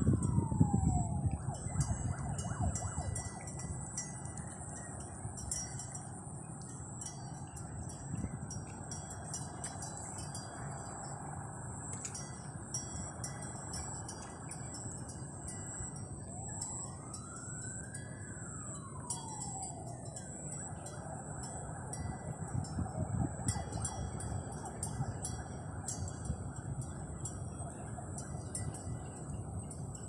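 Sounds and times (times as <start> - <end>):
distant siren: 0.0 - 30.0
wind buffeting microphone: 0.0 - 30.0.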